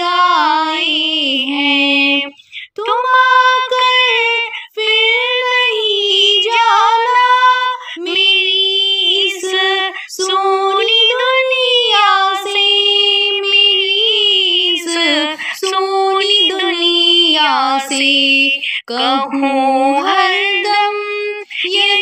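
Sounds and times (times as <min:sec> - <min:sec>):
woman singing devotional song: 0:00.0 - 0:22.0.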